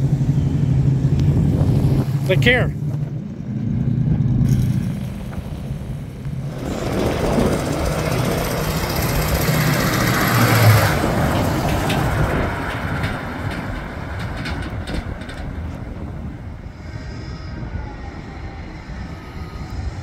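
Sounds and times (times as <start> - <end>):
car engine driving past: 0.0 - 20.0
truck driving by: 0.0 - 20.0.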